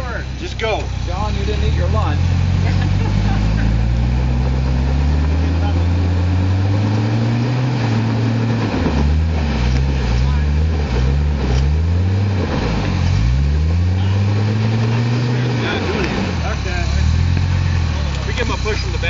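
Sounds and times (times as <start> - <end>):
suv engine revving hard: 0.0 - 19.0.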